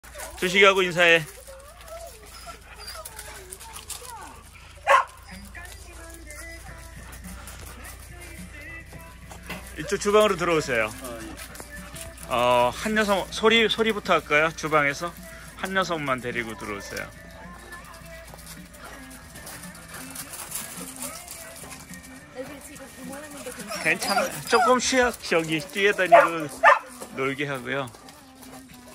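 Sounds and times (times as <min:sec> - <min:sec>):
dogs whining: 0:00.0 - 0:28.9
quiet background music: 0:00.0 - 0:28.9
faint indistinct talking: 0:01.2 - 0:08.8
dog barking: 0:04.7 - 0:05.6, 0:25.9 - 0:27.0.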